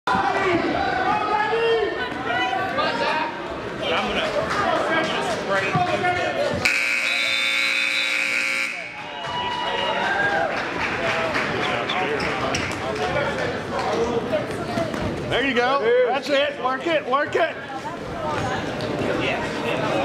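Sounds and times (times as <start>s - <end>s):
overlapping voices of spectators: 2.0s - 6.7s, 8.7s - 15.4s
timer buzzer: 6.6s - 9.1s.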